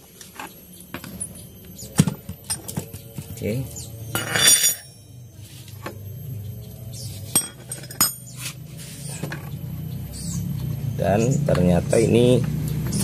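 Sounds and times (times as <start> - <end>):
low steady hum: 0.0 - 13.0
metal parts and tools clinking: 2.0 - 3.4, 4.1 - 5.2, 7.3 - 8.6.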